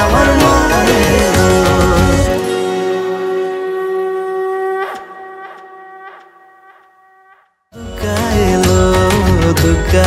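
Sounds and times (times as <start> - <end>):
conch shell blown: 2.3 - 7.6.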